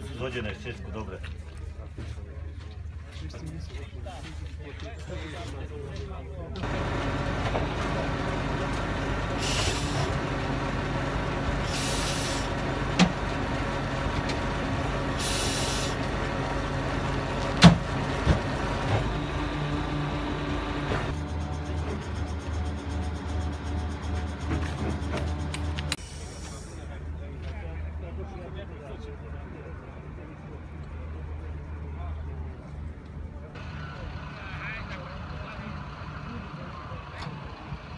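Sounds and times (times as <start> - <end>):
diesel engine running: 6.6 - 37.9
air hisses: 9.3 - 10.2, 11.6 - 12.6, 15.1 - 16.0, 25.9 - 27.0.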